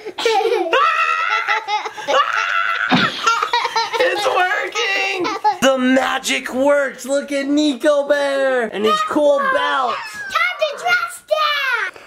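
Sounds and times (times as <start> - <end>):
child giggling: 0.0 - 5.6, 9.4 - 11.0.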